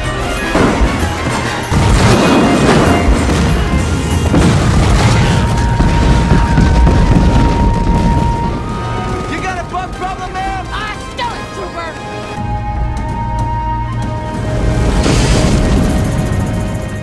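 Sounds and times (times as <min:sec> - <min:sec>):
explosions rumbling: 0:00.5 - 0:10.6.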